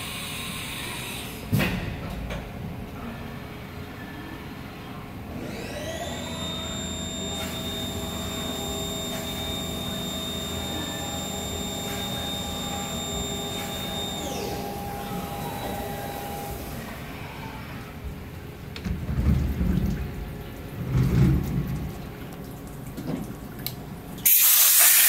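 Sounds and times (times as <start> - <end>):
wash system motor whining: 4.8 - 25.0
water spray hissing on glass: 24.2 - 25.0.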